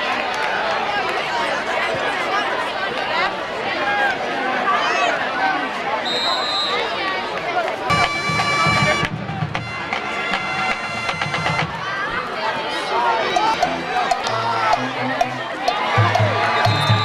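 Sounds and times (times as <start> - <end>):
crowd chatter: 0.0 - 17.0
brass instruments holding notes: 7.9 - 11.7, 13.3 - 17.0.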